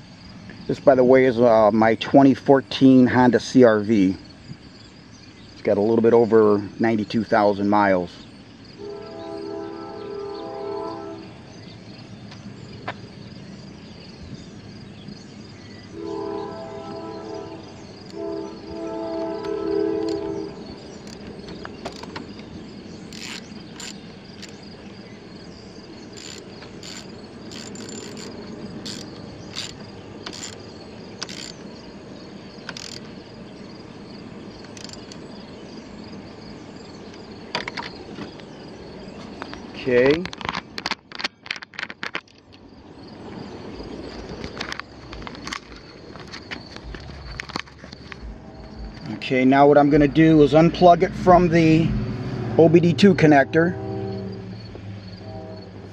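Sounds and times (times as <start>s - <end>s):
insects buzzing: 0.0s - 55.9s
train horn blasts: 8.8s - 11.4s, 15.9s - 21.0s, 48.2s - 50.1s, 51.9s - 55.9s
socket ratchet clicking: 21.0s - 22.3s, 23.1s - 24.6s, 26.1s - 31.7s, 32.6s - 33.1s, 34.7s - 35.2s.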